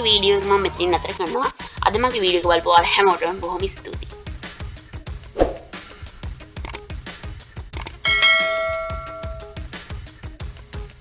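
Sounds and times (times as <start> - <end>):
music with steady beat: 3.9 - 11.0
bright bell chime: 8.0 - 9.6.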